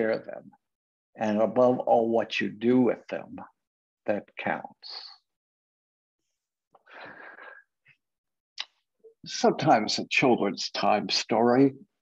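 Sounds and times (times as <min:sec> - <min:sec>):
man breathing in: 0:06.8 - 0:07.7.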